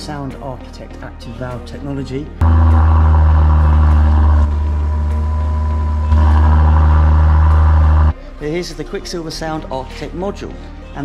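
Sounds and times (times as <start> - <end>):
car engine idling: 2.4 - 8.2.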